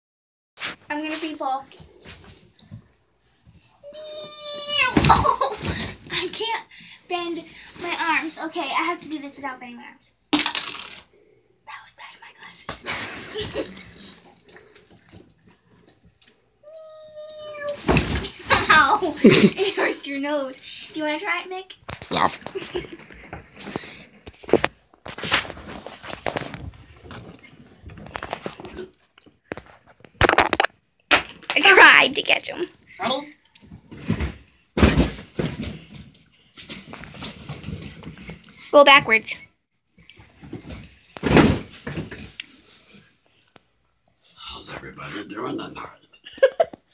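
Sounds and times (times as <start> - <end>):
thud on mattress: 34.0 - 35.8, 41.2 - 42.2.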